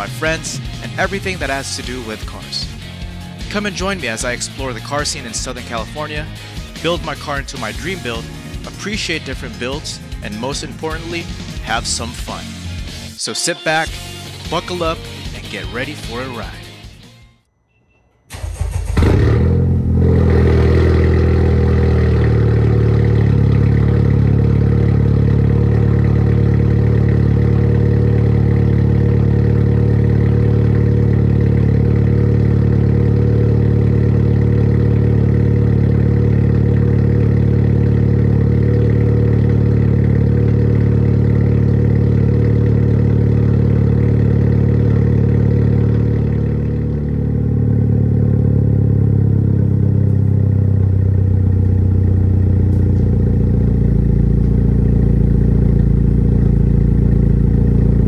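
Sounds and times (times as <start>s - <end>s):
car engine idling loudly: 0.0s - 13.0s, 18.4s - 58.0s
car engine cranking and starting: 18.3s - 58.0s.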